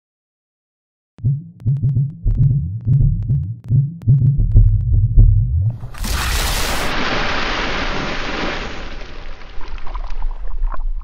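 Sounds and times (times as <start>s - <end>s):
deep electronic throb: 1.2s - 5.7s.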